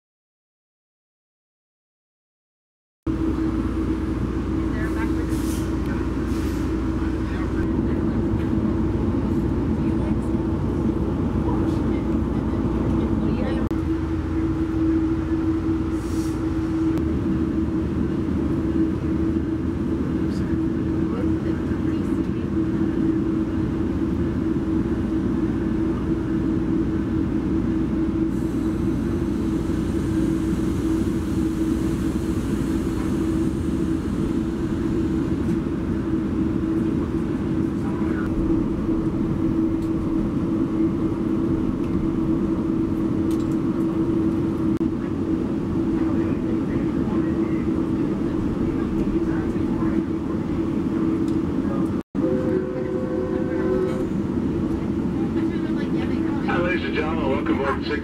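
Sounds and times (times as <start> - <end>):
train hum and rumble: 3.1 - 58.0.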